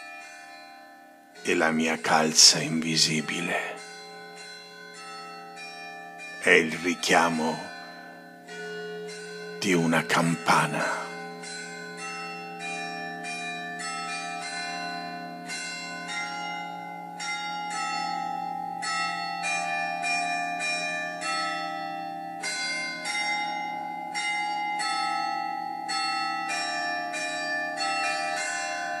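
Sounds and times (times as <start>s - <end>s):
church bells ringing: 0.0s - 29.0s.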